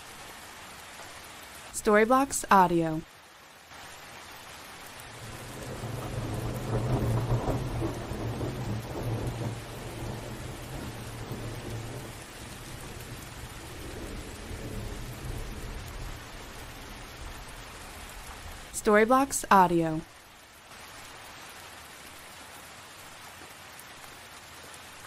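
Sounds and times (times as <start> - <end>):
steady rain: 0.0 - 25.0
rolling thunder: 5.2 - 17.6.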